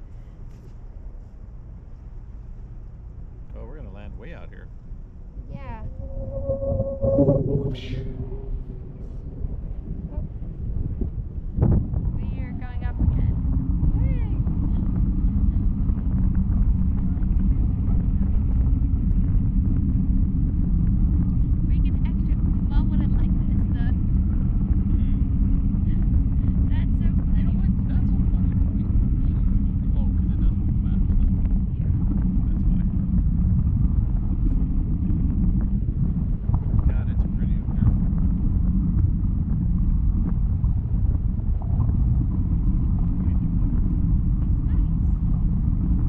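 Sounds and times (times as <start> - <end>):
wind buffeting microphone: 0.0 - 46.0
faint high wavering sounds: 3.6 - 10.8.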